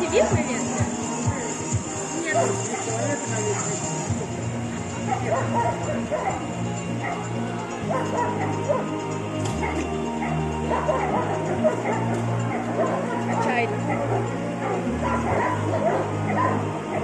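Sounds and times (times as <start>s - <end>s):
dogs barking and yelping: 0.0s - 17.0s
music with held bass notes: 0.0s - 17.0s.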